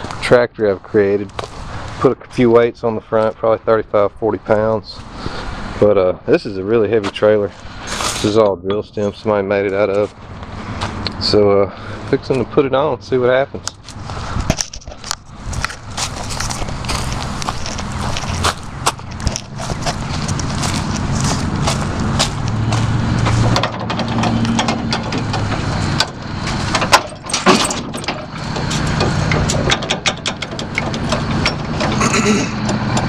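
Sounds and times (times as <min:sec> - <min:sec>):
riding mower engine idling: 0:06.7 - 0:33.0
metal chain clanks and rattles: 0:23.1 - 0:33.0.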